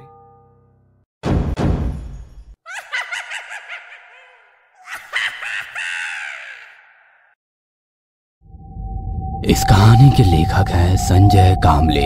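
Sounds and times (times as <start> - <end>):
shrill repeating cries: 2.7 - 7.4.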